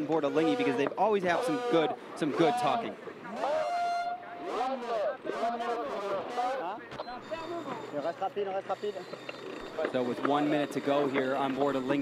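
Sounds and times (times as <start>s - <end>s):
people talking: 0.0s - 9.0s, 9.8s - 12.0s.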